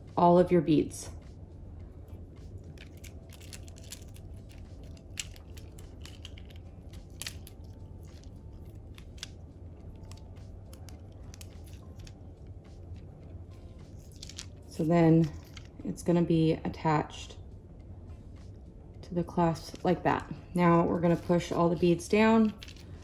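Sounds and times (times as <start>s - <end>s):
steady low hum: 0.0s - 23.0s
plastic beads clicking together: 2.7s - 9.4s, 10.0s - 12.2s, 14.0s - 15.7s, 22.5s - 22.9s.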